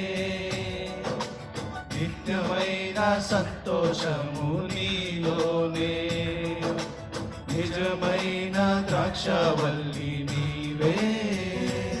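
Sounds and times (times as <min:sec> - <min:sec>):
men singing worship song: 0:00.0 - 0:12.0
musical accompaniment: 0:00.0 - 0:12.0.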